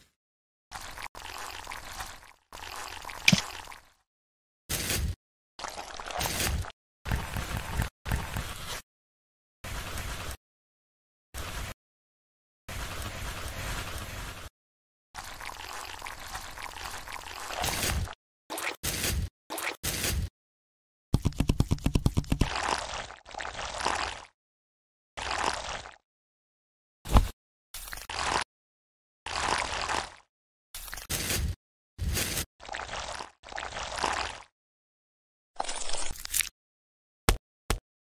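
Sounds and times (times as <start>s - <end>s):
liquid pouring: 0.7s - 4.0s, 15.2s - 17.7s, 22.4s - 24.2s, 25.2s - 26.0s.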